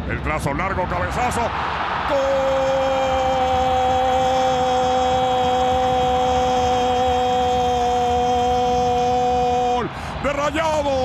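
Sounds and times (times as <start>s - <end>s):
commentator's sustained goal cry: 2.0s - 9.9s.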